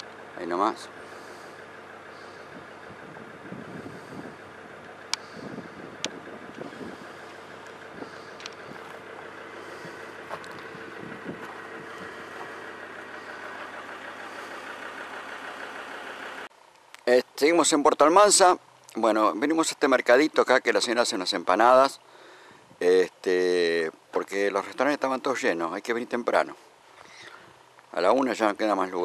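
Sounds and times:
vehicle engine idling: 0.0 - 16.8, 21.2 - 29.0.

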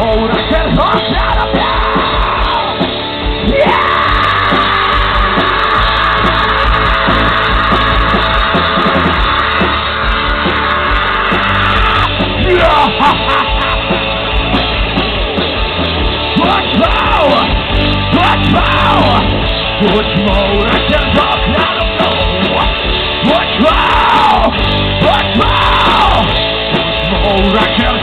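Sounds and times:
rock band playing loudly: 0.0 - 28.0
shouted vocal: 3.5 - 13.7, 18.2 - 19.3, 22.5 - 26.3.

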